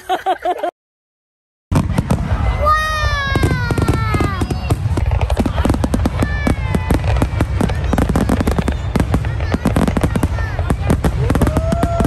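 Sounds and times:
fireworks crackling: 1.7 - 12.0
fireworks whistling: 1.7 - 12.0.

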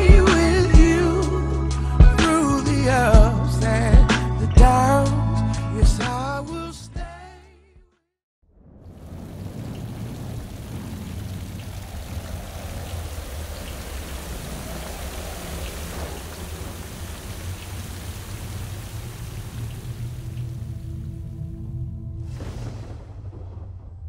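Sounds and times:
deep rumble of thunder: 8.5 - 24.0
steady rain: 8.8 - 21.5.

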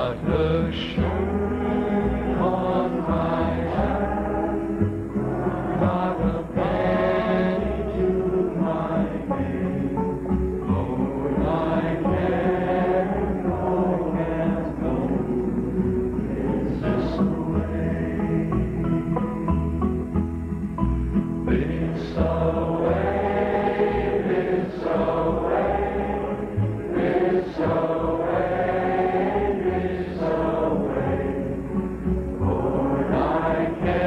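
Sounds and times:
voices singing in harmony: 0.0 - 20.0, 21.4 - 34.0
folk song with instrumental backing: 0.0 - 34.0.

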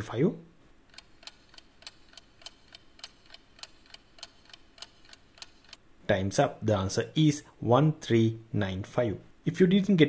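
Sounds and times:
faint clock ticking: 0.8 - 5.9.

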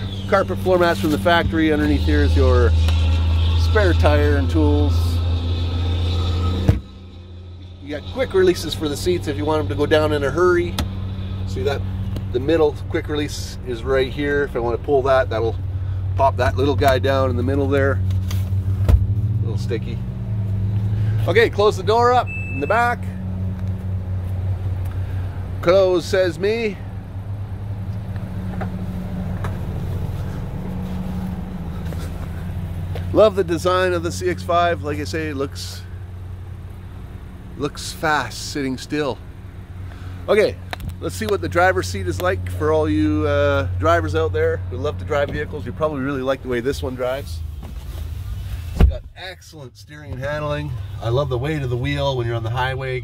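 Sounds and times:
low rumble: 0.0 - 46.7
car engine idling: 0.0 - 53.0.

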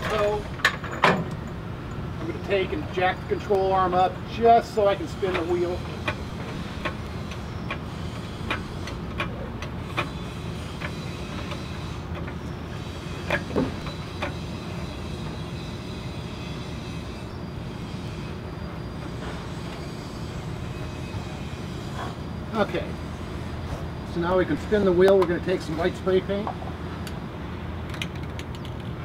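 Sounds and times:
metal clanks: 0.0 - 2.4.

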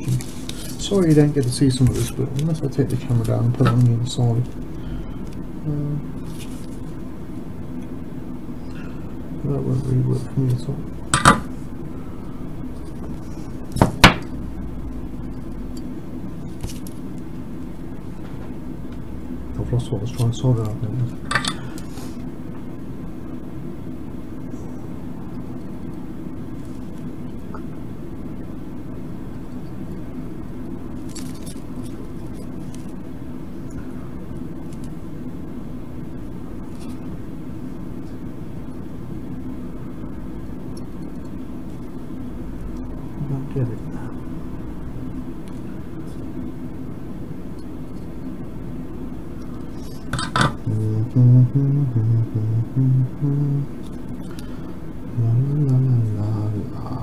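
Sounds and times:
steady low hum: 0.0 - 57.0
man's voice: 50.7 - 53.7, 55.2 - 57.0.

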